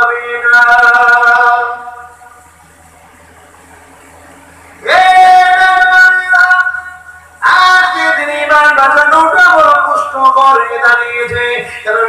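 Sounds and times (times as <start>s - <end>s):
man singing through loudspeakers: 0.0s - 2.4s, 4.8s - 12.0s
faint hall noise: 0.0s - 12.0s
low steady hum: 0.0s - 12.0s.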